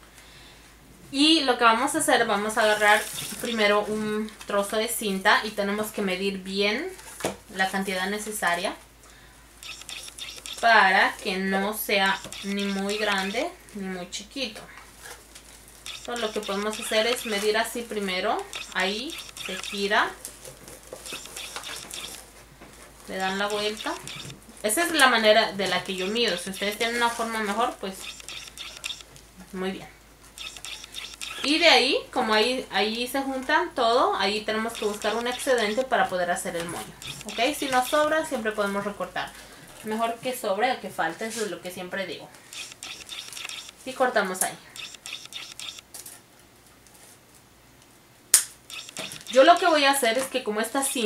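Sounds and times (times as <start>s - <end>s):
ribbon rustling and scratching: 2.6s - 3.9s, 9.6s - 11.4s, 12.1s - 13.5s, 14.9s - 29.2s, 34.6s - 38.8s, 42.4s - 43.9s, 48.7s - 50.3s
sharp click: 9.6s - 10.6s, 28.0s - 29.1s, 30.4s - 31.5s, 42.6s - 43.8s, 44.8s - 45.8s, 48.3s - 49.7s.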